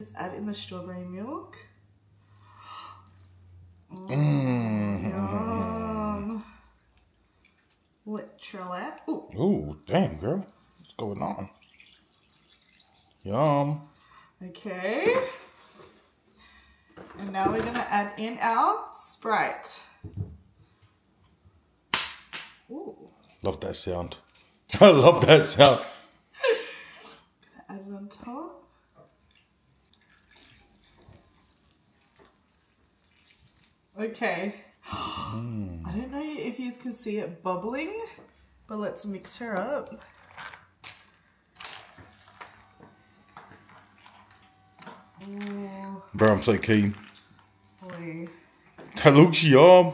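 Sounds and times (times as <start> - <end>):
liquid sloshing: 6.6 - 8.4, 10.1 - 14.2, 28.8 - 34.0, 39.8 - 49.2
bottle cap hiss of carbonation: 21.9 - 22.6.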